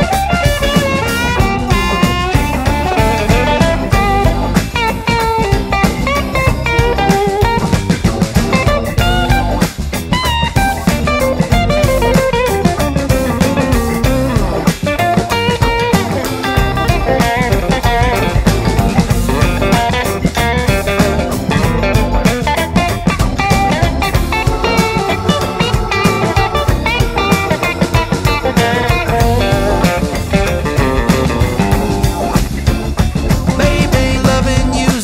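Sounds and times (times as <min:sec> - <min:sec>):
blues rock band instrumental: 0:00.0 - 0:35.0
electric guitar: 0:00.0 - 0:35.0.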